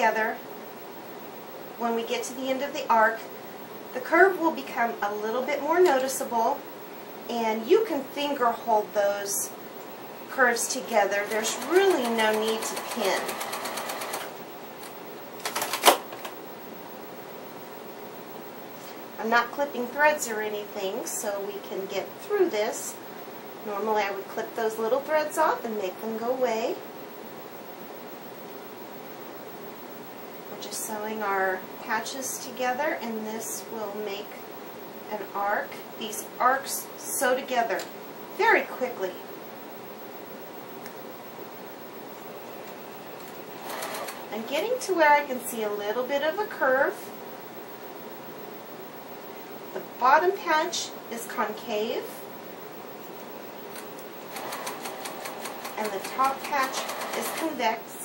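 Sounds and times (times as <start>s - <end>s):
sewing machine stitching: 11.2s - 14.3s, 43.6s - 44.3s, 54.3s - 57.6s.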